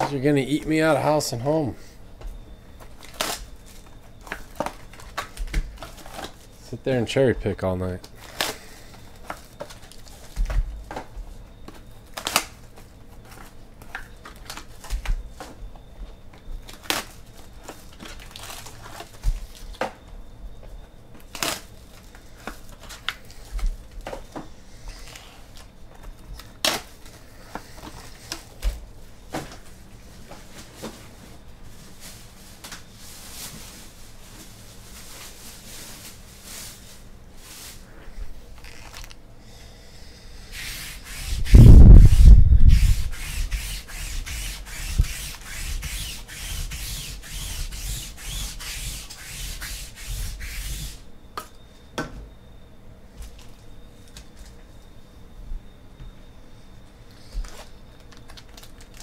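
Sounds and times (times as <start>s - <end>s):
foil packs crinkling: 2.8s - 6.8s, 8.0s - 11.1s, 16.6s - 19.8s, 31.7s - 39.2s, 57.4s - 59.0s.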